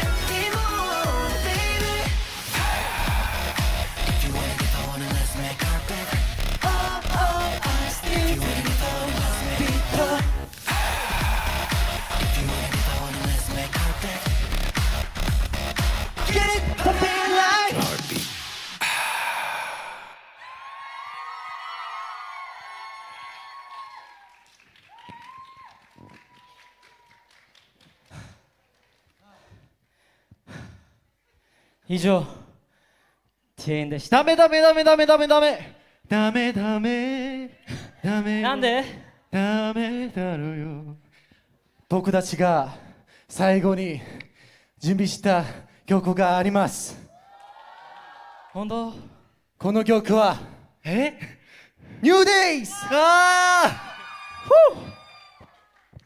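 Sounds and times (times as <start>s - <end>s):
echo of a call: 0.1s - 14.2s
man speaking: 52.0s - 53.8s
high-pitched shout: 52.3s - 55.7s.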